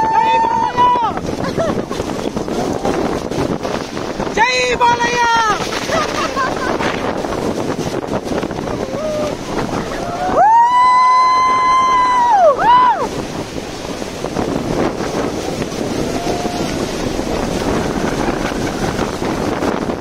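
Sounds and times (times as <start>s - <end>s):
waterfall rushing: 0.0s - 20.0s
wind buffeting microphone: 0.0s - 20.0s
person whooping: 8.7s - 13.1s.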